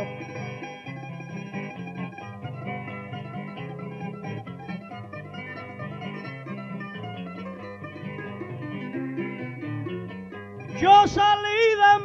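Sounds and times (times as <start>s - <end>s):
plucked strings playing: 0.0s - 12.0s.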